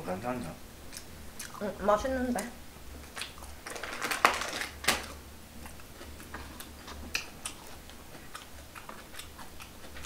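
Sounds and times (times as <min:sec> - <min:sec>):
crisp food crunching: 0:03.0 - 0:10.0.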